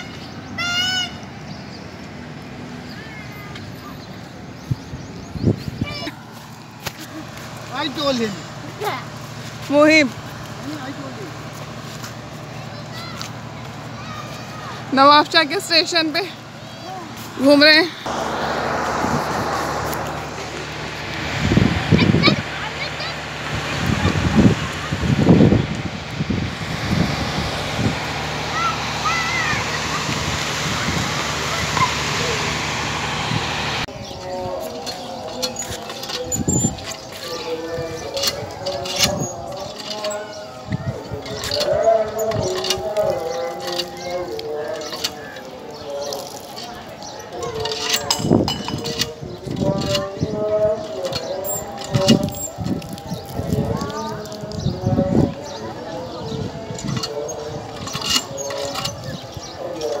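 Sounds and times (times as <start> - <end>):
steady rushing noise: 17.4 - 34.6
low hum: 17.9 - 45.0
water pump metal clanks: 34.6 - 54.4, 56.7 - 60.0.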